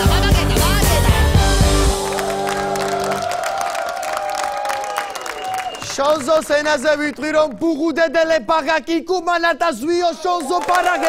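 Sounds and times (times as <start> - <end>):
band song ending chord: 0.0 - 4.2
audience applauding and cheering: 1.3 - 7.3, 10.3 - 11.0
held note sinking in pitch: 1.7 - 4.1.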